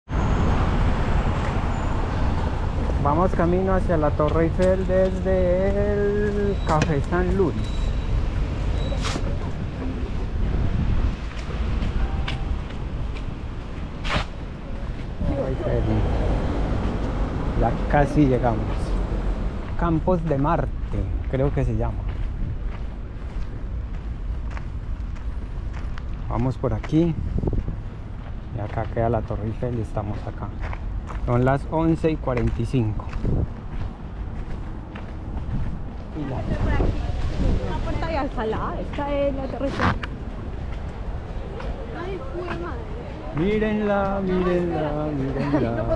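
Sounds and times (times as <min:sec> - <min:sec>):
traffic noise: 0:00.0 - 0:45.9
wind rumbling on microphone: 0:00.1 - 0:18.0, 0:20.7 - 0:44.2.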